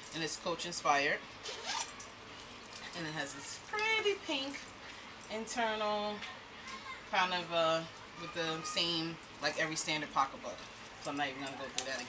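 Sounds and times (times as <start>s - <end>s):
handbag zipper rasp: 1.4s - 1.9s.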